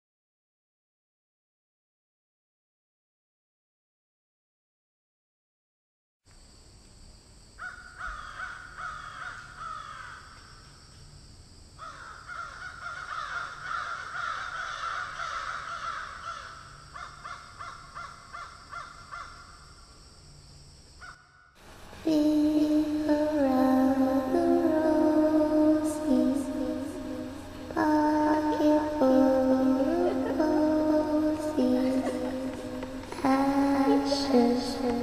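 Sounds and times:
many birds calling: 11.8s - 19.4s
steady hiss: 21.6s - 35.0s
music: 22.2s - 35.0s.

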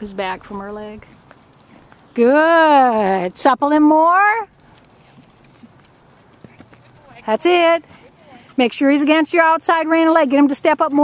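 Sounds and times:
horse hooves on sand: 0.0s - 11.0s.

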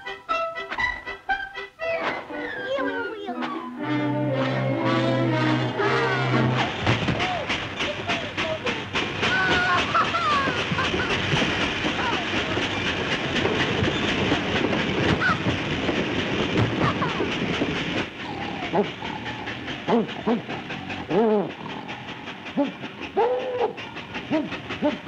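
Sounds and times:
train wheels clickety-clack: 0.0s - 25.0s
steady rushing noise: 4.2s - 18.2s.

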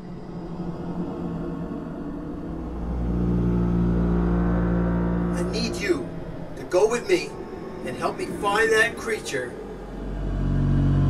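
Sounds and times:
deeper rumble: 0.0s - 11.0s
low steady droning rumble: 0.0s - 11.0s.

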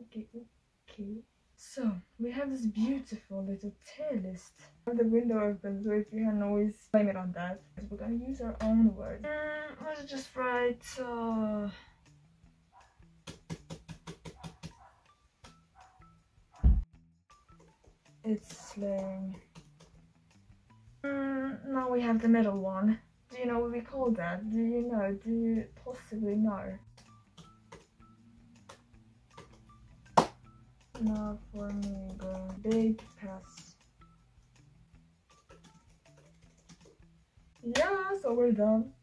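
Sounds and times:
laptop keyboard keys clicking: 28.6s - 29.8s, 30.8s - 33.8s, 35.3s - 37.1s.

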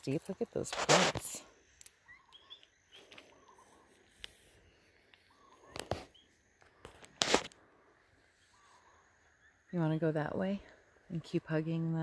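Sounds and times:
footsteps rustling through brush: 0.0s - 9.0s
small birds chirping: 1.4s - 12.0s.

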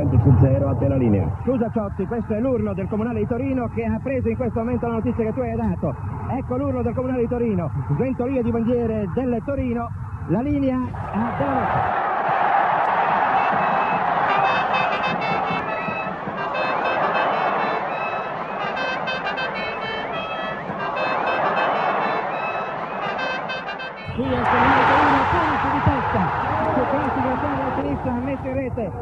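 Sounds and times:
stadium crowd roaring: 10.9s - 28.7s.

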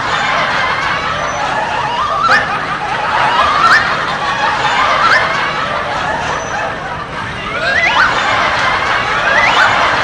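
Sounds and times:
background laughter: 0.0s - 10.0s.

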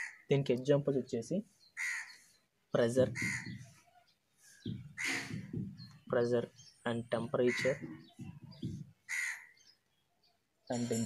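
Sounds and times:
crow cawing: 0.0s - 0.3s, 1.8s - 2.2s, 3.1s - 3.6s, 4.8s - 5.5s, 7.5s - 8.0s, 9.0s - 9.6s.

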